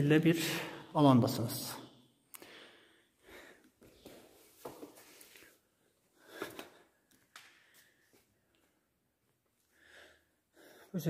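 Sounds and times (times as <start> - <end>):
soft footsteps and scuffs: 3.8 - 8.8.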